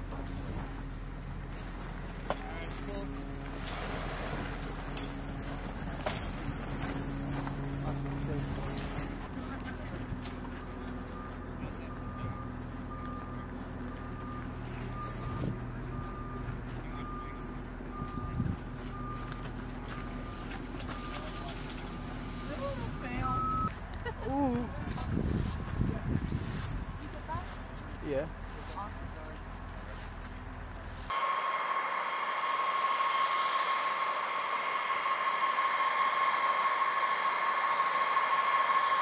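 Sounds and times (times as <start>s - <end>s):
vehicle engine running: 0.0s - 31.2s
back-up alarm beeping: 10.2s - 23.7s.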